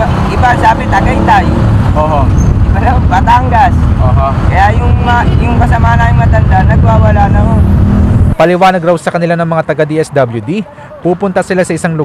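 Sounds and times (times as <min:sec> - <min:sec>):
low rumble of road traffic: 0:00.0 - 0:12.0.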